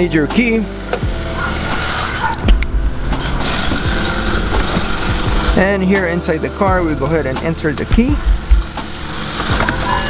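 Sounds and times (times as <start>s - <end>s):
low thumps inside car: 7.9s - 8.8s.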